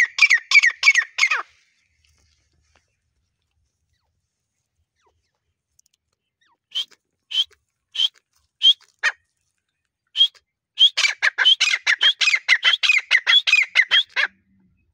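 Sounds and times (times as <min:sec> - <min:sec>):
partridge calling: 0:00.0 - 0:01.5, 0:10.2 - 0:14.4.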